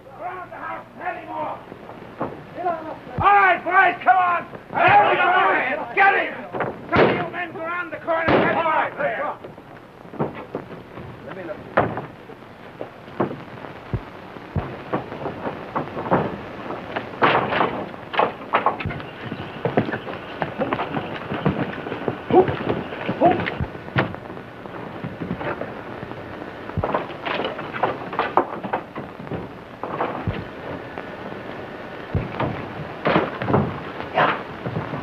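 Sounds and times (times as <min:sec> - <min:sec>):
film soundtrack hiss: 0:00.0 - 0:35.0
sharp bangs and knocks: 0:06.5 - 0:07.4, 0:08.2 - 0:08.6, 0:13.2 - 0:24.3, 0:26.8 - 0:30.6, 0:32.1 - 0:35.0.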